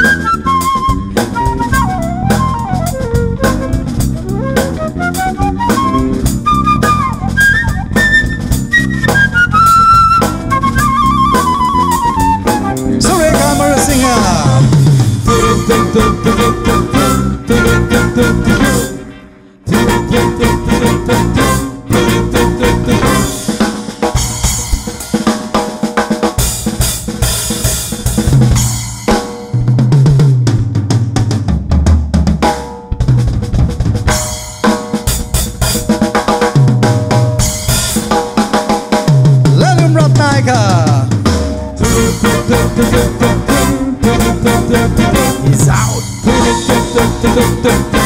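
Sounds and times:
bass line: 0.0 - 23.6, 39.4 - 48.0
drum kit played hard: 0.0 - 48.0.

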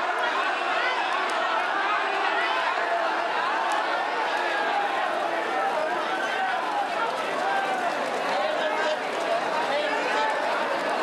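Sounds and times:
people talking: 0.0 - 11.0
horses galloping on turf: 6.5 - 10.9.

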